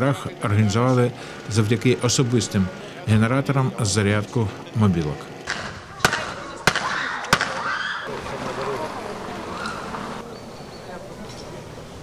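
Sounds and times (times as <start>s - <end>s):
murmur of voices outdoors: 0.0s - 12.0s
sharp cracks: 5.4s - 8.0s.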